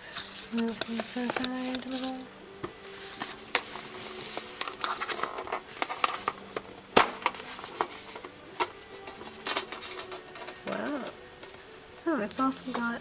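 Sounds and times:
pencil tin rustling and clicking: 0:00.1 - 0:02.3, 0:03.1 - 0:10.9.

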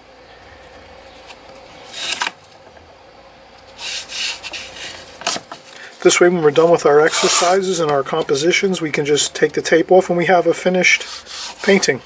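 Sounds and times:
masking tape rasping: 0:07.0 - 0:07.6.

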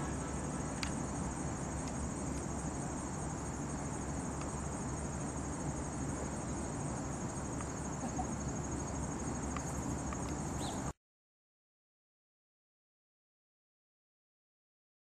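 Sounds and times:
low outdoor rumble: 0:00.0 - 0:10.9
crickets trilling: 0:00.0 - 0:11.0.

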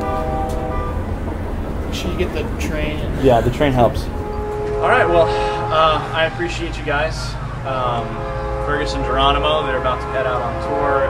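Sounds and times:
train horn chord: 0:00.0 - 0:11.0
train rumbling: 0:00.0 - 0:11.0.

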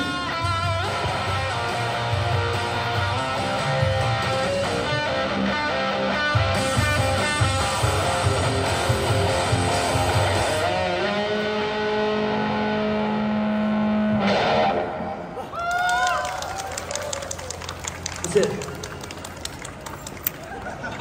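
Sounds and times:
live rock song: 0:00.0 - 0:15.0
crowd clapping and cheering: 0:15.5 - 0:21.0.

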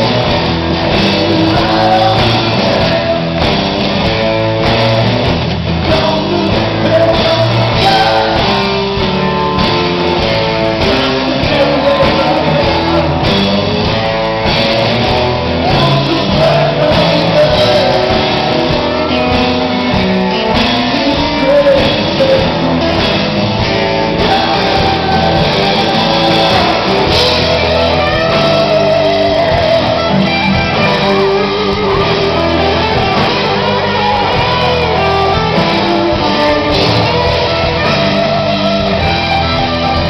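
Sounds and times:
bass guitar: 0:00.0 - 0:40.0
drums: 0:00.0 - 0:40.0
electric guitars: 0:00.0 - 0:40.0
live rock band playing: 0:00.0 - 0:40.0.

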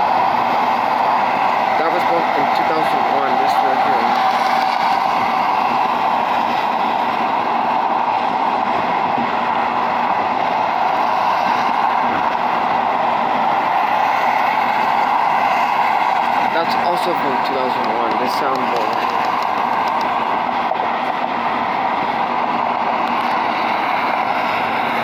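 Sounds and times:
car road and wind noise: 0:00.0 - 0:25.0.

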